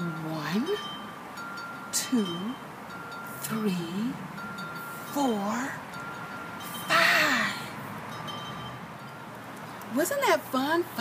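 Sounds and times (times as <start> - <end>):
woman speaking: 0.0 - 0.8, 2.0 - 2.6, 3.4 - 4.2, 5.1 - 5.8, 6.8 - 7.8, 9.9 - 11.0.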